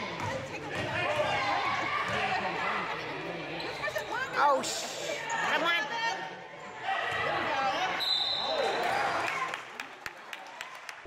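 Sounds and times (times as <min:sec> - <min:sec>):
people shouting in a gym: 0:00.0 - 0:03.1, 0:04.0 - 0:09.4
referee's whistle: 0:08.0 - 0:08.8.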